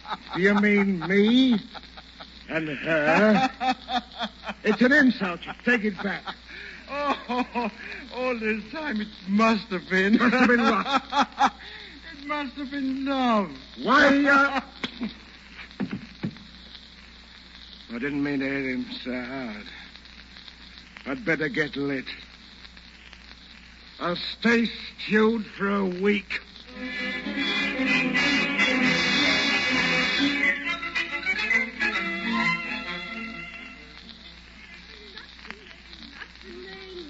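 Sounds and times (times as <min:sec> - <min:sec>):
crackling surface hiss: 0:00.0 - 0:37.0.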